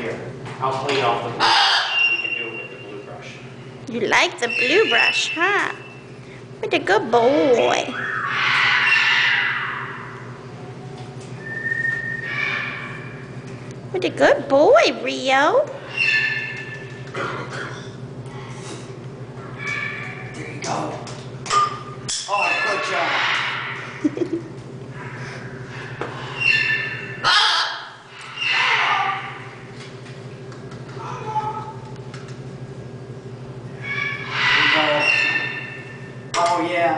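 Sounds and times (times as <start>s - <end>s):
macaw squawking: 1.4s - 2.8s, 4.1s - 6.0s, 7.5s - 10.4s, 12.1s - 13.3s, 15.8s - 16.9s, 19.6s - 20.5s, 22.3s - 23.9s, 26.2s - 29.6s, 33.7s - 36.1s.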